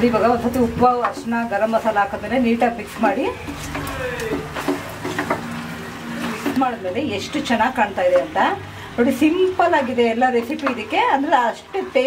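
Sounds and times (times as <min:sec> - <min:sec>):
food stirred in a pan: 0:00.5 - 0:08.7.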